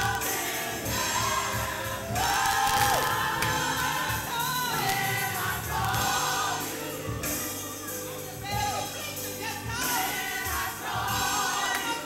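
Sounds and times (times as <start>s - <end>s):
gospel choir singing: 0.0s - 12.0s
instrumental accompaniment with beat: 0.0s - 12.0s.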